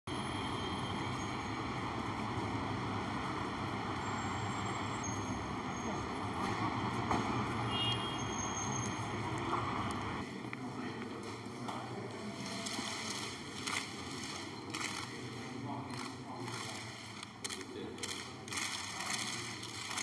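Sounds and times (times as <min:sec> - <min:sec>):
passing traffic rumble: 0:00.1 - 0:20.0.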